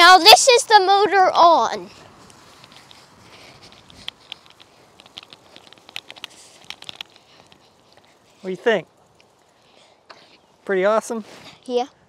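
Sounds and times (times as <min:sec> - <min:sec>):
light clicks and crackles: 0:01.8 - 0:10.5.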